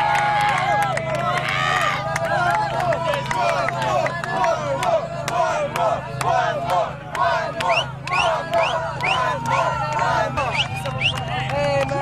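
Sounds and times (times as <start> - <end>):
crowd shouting and cheering: 0.0 - 12.0.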